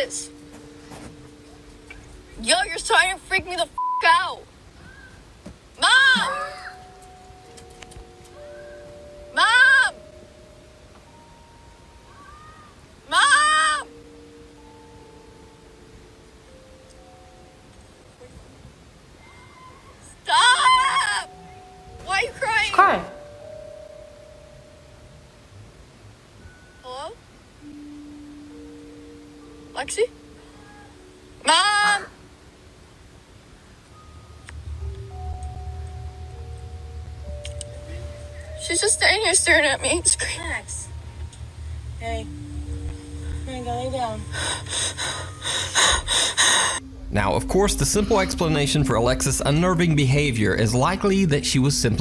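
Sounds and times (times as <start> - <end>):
faint steady hum: 0.0 - 52.0
soft background hiss: 0.0 - 52.0
person gasping breaths: 44.3 - 46.8.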